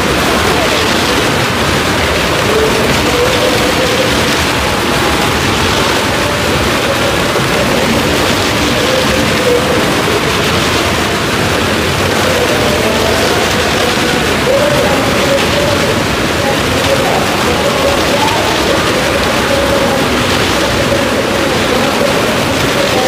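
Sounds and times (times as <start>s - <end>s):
car engines running hard: 0.0s - 23.0s.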